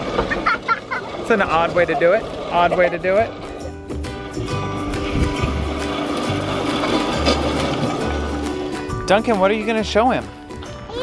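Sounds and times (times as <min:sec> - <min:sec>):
roller slide rollers rumbling: 0:00.0 - 0:10.2
background music: 0:01.4 - 0:11.0.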